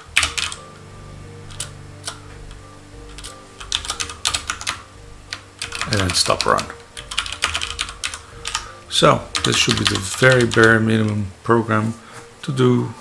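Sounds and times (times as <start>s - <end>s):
computer keyboard typing: 0.0s - 0.7s, 1.5s - 10.8s
faint steady hum: 0.0s - 13.0s.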